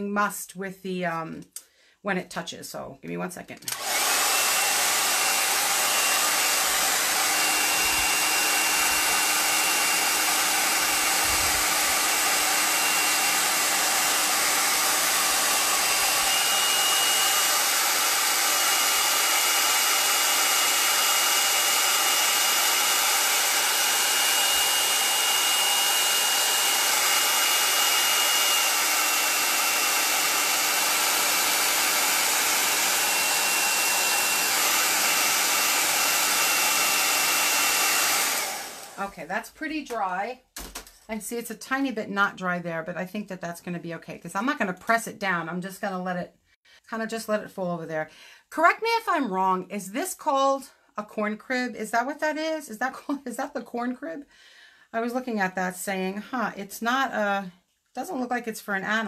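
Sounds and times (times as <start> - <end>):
hair dryer running: 3.6 - 40.9.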